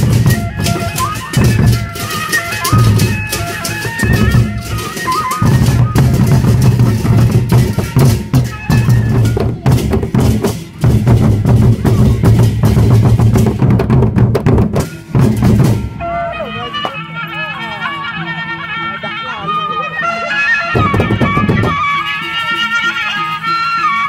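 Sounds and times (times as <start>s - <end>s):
large drums beaten fast: 0.0s - 16.9s, 20.7s - 22.0s.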